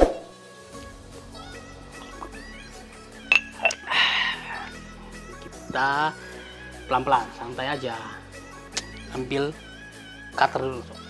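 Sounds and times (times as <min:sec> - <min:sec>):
mug clinks: 0:03.3 - 0:03.9
breathy sip: 0:03.6 - 0:04.8.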